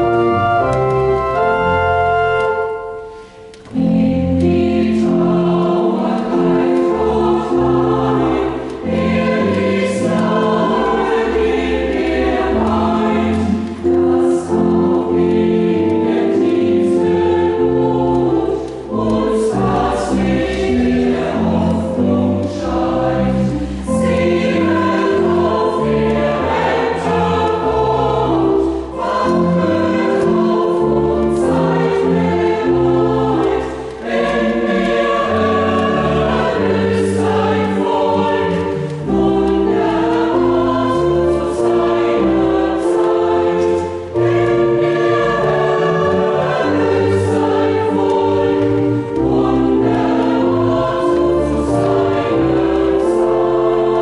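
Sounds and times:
choir singing a hymn: 0:00.0 - 0:54.0
organ: 0:00.0 - 0:54.0
singers breathing: 0:03.0 - 0:03.7, 0:23.6 - 0:24.0.

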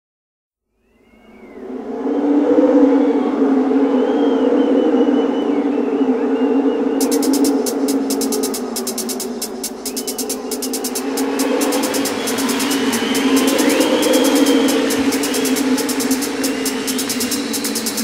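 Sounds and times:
high percussion ticking: 0:07.0 - 0:18.0
sustained synthesizer chord: 0:07.6 - 0:18.0.

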